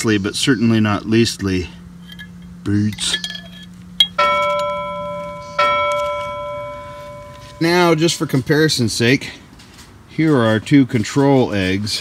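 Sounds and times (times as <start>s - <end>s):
bell-like chime ringing: 3.2s - 8.6s.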